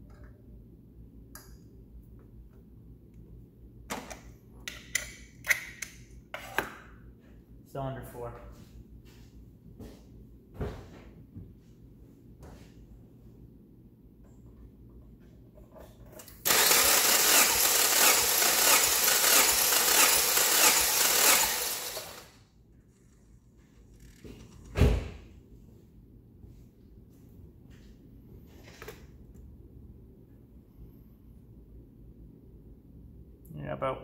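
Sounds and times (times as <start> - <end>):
engine cranking on starter: 16.4 - 22.3
thump: 24.7 - 25.2.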